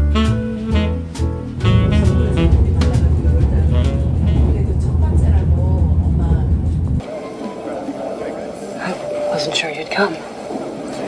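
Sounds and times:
music: 0:00.0 - 0:05.3
subway train rumbling: 0:01.4 - 0:11.0
voice: 0:02.0 - 0:06.7, 0:07.8 - 0:10.2.

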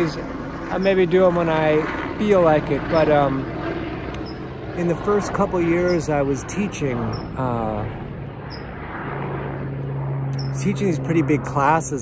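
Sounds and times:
aircraft engine hum: 0:00.0 - 0:12.0.

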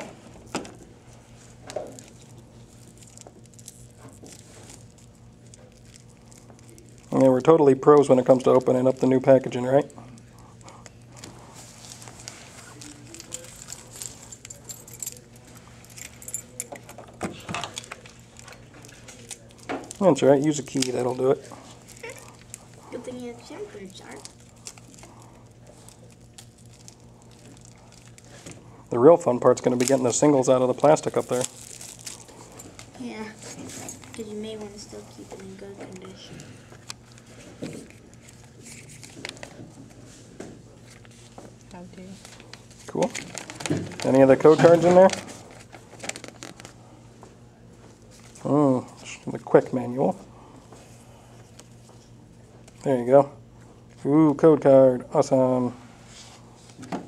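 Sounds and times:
steady low hum: 0:00.0 - 0:57.0
cards and packaging rustling: 0:01.4 - 0:39.9, 0:40.8 - 0:46.8
keys jingling: 0:13.0 - 0:17.0
key cutting plastic wrap: 0:30.8 - 0:32.8.

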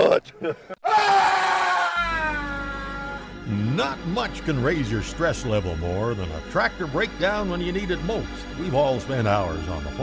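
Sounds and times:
woman screaming: 0:00.8 - 0:03.3
low background music: 0:02.0 - 0:10.0.

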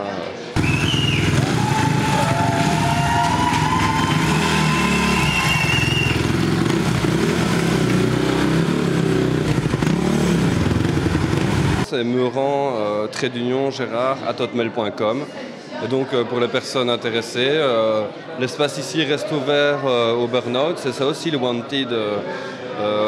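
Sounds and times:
high squealing whine: 0:00.6 - 0:07.2
motorcycle engine at high revs: 0:00.6 - 0:11.9.

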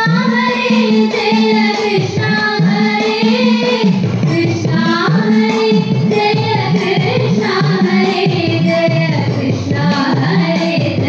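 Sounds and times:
woman singing: 0:00.0 - 0:11.0.

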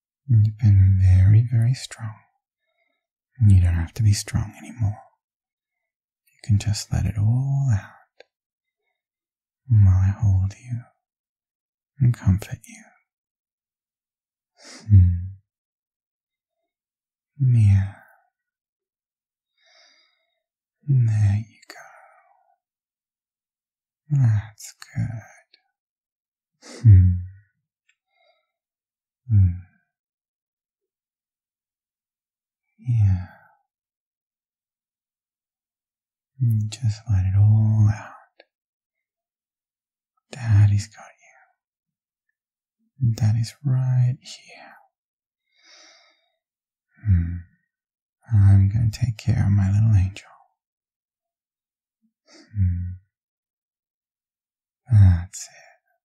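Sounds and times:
man speaking softly: 0:00.3 - 0:02.3, 0:03.4 - 0:05.2, 0:06.3 - 0:08.2, 0:09.7 - 0:11.0, 0:12.0 - 0:13.0, 0:17.4 - 0:18.1, 0:20.9 - 0:22.0, 0:24.1 - 0:25.6, 0:26.7 - 0:27.3, 0:29.3 - 0:29.6, 0:32.8 - 0:33.4, 0:36.4 - 0:38.4, 0:40.3 - 0:41.4, 0:43.0 - 0:44.8, 0:48.2 - 0:50.4, 0:54.9 - 0:55.7
man's deep breathy voice: 0:14.6 - 0:15.4, 0:17.4 - 0:18.2, 0:19.6 - 0:22.4, 0:24.1 - 0:25.6, 0:26.6 - 0:27.4, 0:29.3 - 0:29.8, 0:32.8 - 0:33.6, 0:45.5 - 0:47.5, 0:52.3 - 0:53.1, 0:54.9 - 0:55.8.

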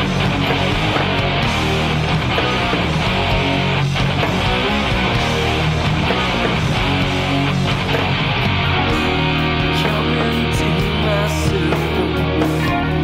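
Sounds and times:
distorted electric guitar: 0:00.0 - 0:13.0.

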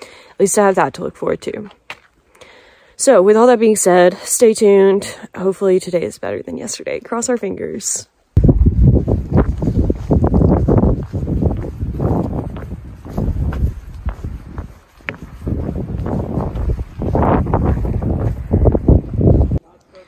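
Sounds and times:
wind buffeting microphone: 0:08.4 - 0:19.6.

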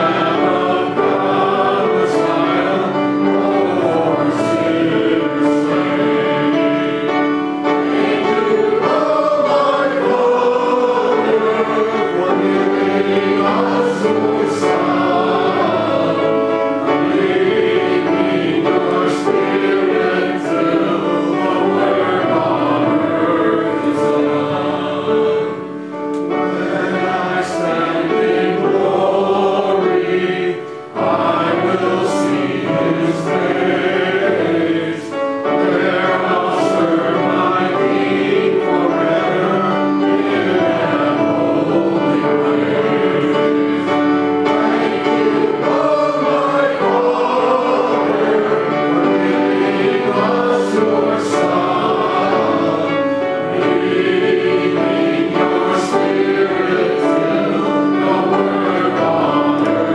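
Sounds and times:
many voices singing a hymn: 0:00.0 - 0:59.9.

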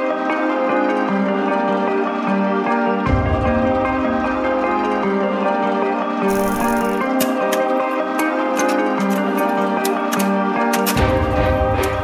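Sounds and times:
background music melody: 0:00.0 - 0:12.0.

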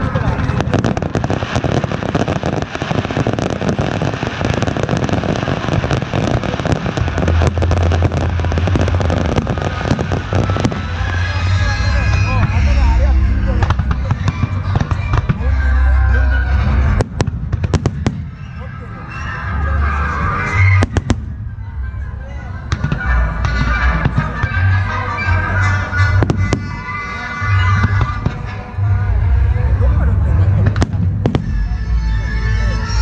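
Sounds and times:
crackle of small firework bursts: 0:00.0 - 0:12.8, 0:16.6 - 0:18.6.

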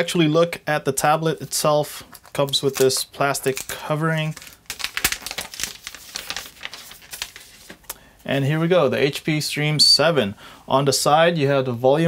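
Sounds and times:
plastic film crackling: 0:02.0 - 0:08.0.

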